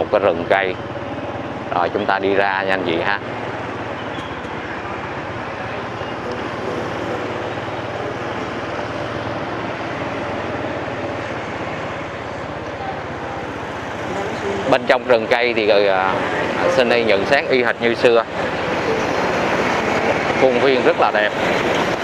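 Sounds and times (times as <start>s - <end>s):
motorbike engine running: 0.0s - 22.0s
road and wind noise: 0.0s - 22.0s.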